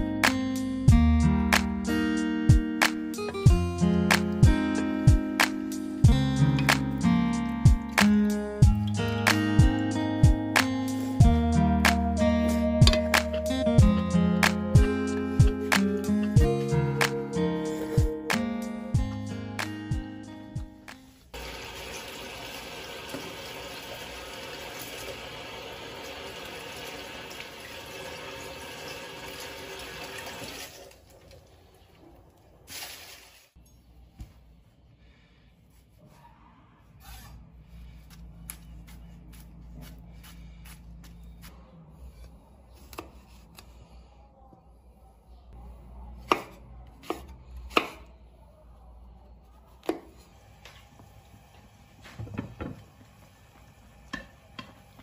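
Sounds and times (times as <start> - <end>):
tap water running: 21.4 - 33.4, 50.5 - 55.0
knife chopping on cutting board: 42.8 - 43.6, 46.2 - 48.0.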